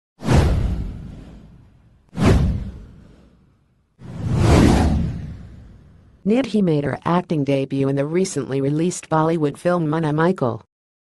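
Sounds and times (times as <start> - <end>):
whoosh sound effects: 0.2 - 6.2.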